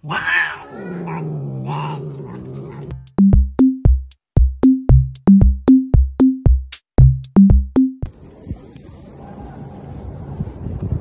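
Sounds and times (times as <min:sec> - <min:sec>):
cat growling yowl: 0:00.0 - 0:02.9
electronic music with drum beat: 0:02.9 - 0:08.1.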